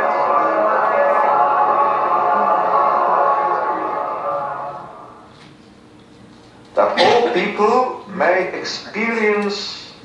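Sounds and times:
choir singing over speakers: 0.0 - 5.3.

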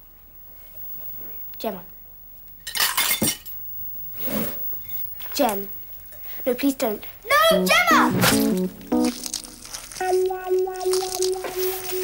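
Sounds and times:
tableware clinking and clattering: 2.6 - 3.6.

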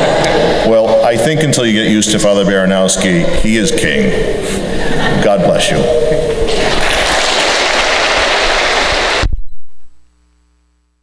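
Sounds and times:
congregation applauding: 6.5 - 9.3.

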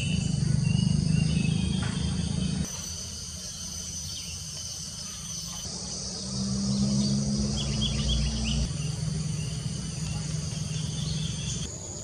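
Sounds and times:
insects trilling: 0.0 - 12.0
small bird chirps: 0.0 - 12.0
low steady hum: 5.0 - 11.7.

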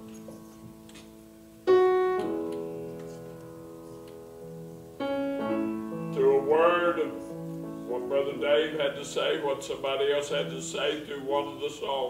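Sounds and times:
piano playing soft chords: 0.0 - 12.0
person's voice: 6.1 - 7.3, 7.9 - 12.0.

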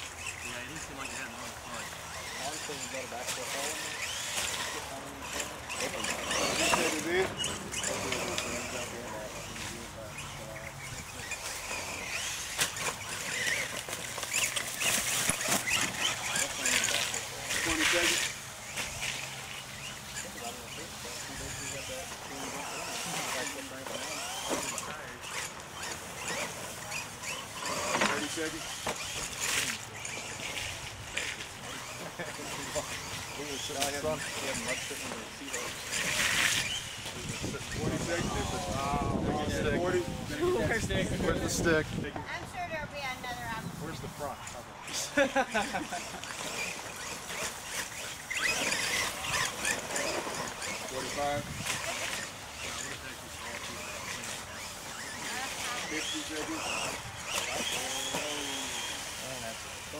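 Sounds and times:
spectators talking: 0.0 - 59.9
toy trucks revving in mud: 0.0 - 59.9.

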